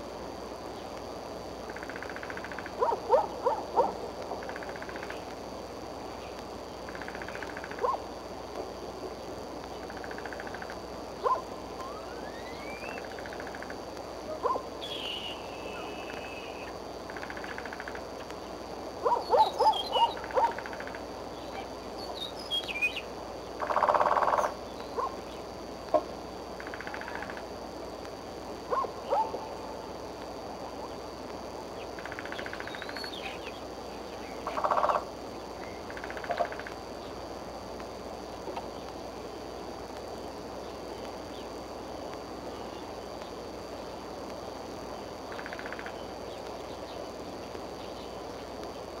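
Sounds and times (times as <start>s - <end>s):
outdoor hiss: 0.0s - 49.0s.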